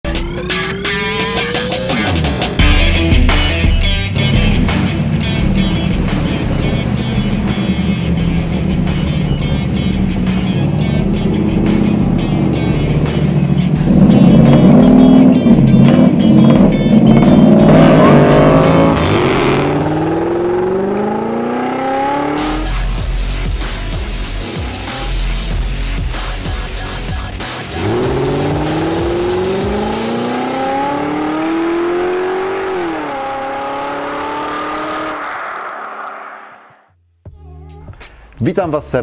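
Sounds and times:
music: 0.0 - 34.7, 36.9 - 39.0
car engine revving: 0.1 - 36.9.

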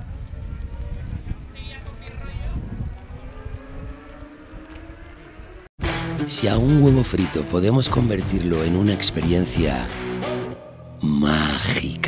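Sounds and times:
wind buffeting microphone: 0.0 - 5.7.

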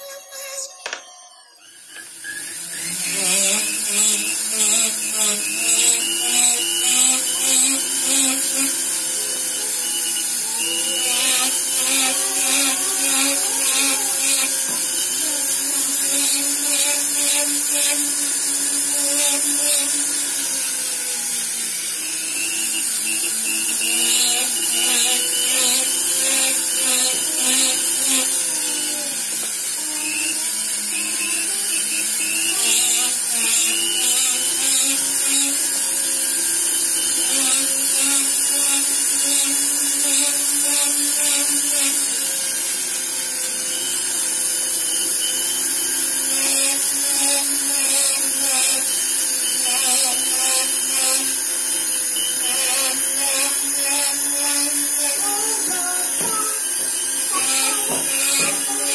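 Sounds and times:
rotary tool grinding metal: 0.0 - 58.9.

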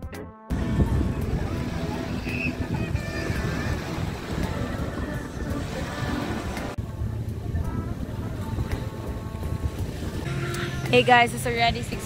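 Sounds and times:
faint background music: 0.0 - 12.0
wind buffeting microphone: 0.5 - 12.0.

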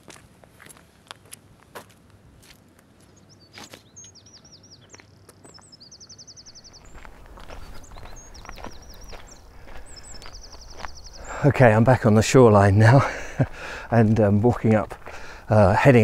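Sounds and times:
footsteps crunching on concrete: 0.0 - 4.0, 4.8 - 5.7, 6.6 - 16.0
songbird singing a trill: 3.1 - 13.0.

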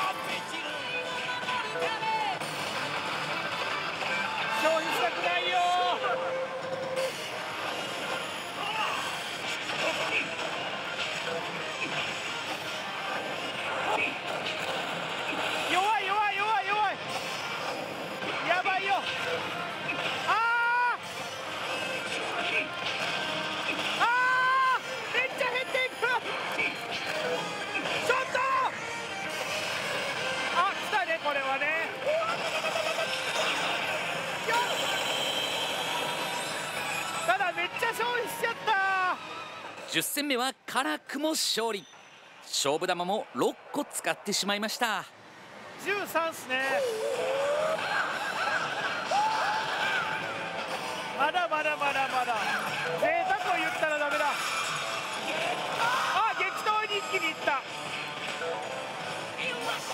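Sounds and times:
pachinko parlor din: 0.0 - 45.0, 45.8 - 59.9
slot machine music and effects: 0.0 - 45.0, 47.5 - 59.9.

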